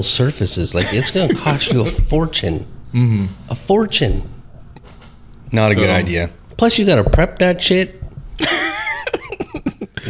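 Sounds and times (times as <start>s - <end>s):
man laughing: 0.8s - 2.2s, 8.4s - 10.0s.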